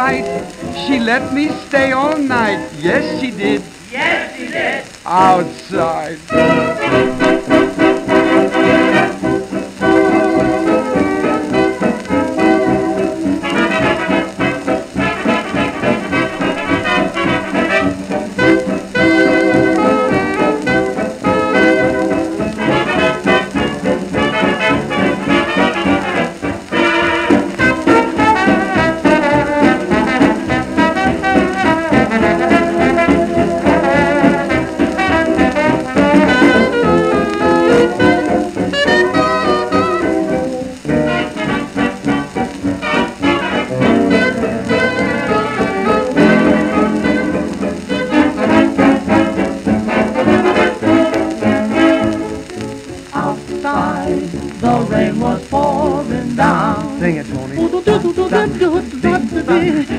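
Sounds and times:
dance orchestra fox-trot with brass: 0:06.3 - 0:52.6.

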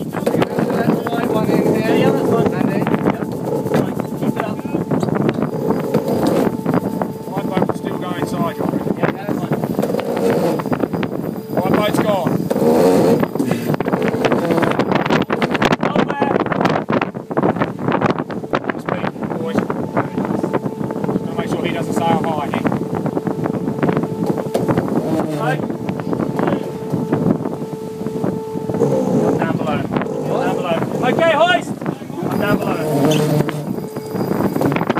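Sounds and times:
indistinct crew voices: 0:00.0 - 0:16.8, 0:17.5 - 0:34.9
rush of wind and water: 0:00.0 - 0:34.9
steady humming tone: 0:00.0 - 0:34.9.

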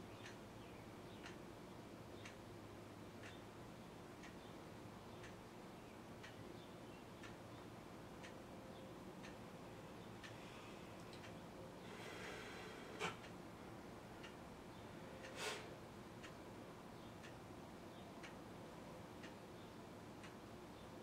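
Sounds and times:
clock ticking: 0:03.2 - 0:03.4, 0:07.2 - 0:07.4, 0:09.2 - 0:09.5, 0:16.1 - 0:16.4.

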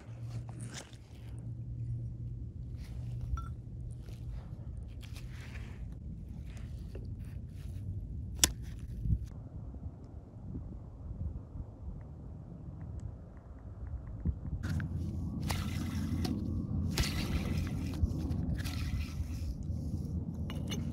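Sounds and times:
steady low hum: 0:00.0 - 0:20.9.

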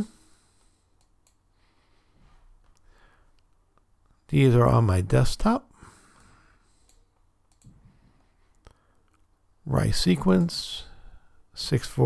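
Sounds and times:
computer mouse clicks: 0:01.0 - 0:01.4, 0:06.8 - 0:07.8.

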